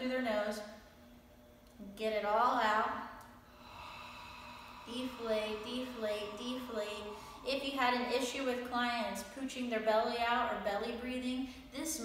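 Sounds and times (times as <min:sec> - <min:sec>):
person exhaling: 0:03.5 - 0:08.7.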